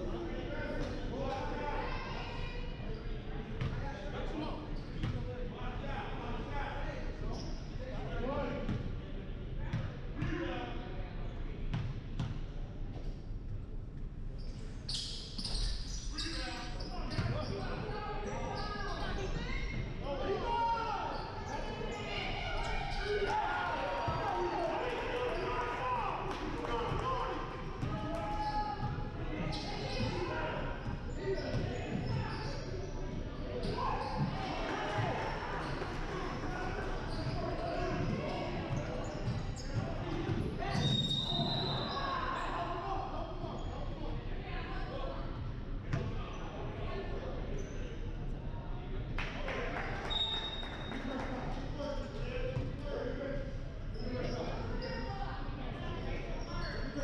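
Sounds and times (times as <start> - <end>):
shouting and chatter: 17.3 - 43.4.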